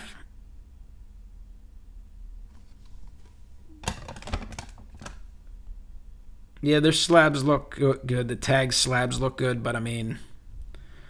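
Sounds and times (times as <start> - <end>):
plastic card cases clacking: 2.8 - 5.2.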